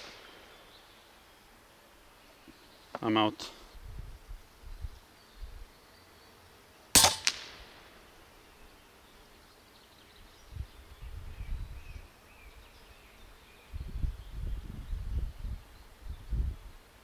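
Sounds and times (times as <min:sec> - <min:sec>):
air rifle shot crack: 0:00.0 - 0:00.6, 0:07.0 - 0:07.9.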